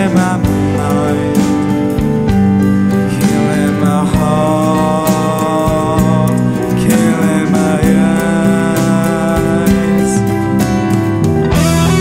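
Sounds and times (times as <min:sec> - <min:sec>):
rock band music: 0:00.0 - 0:12.0.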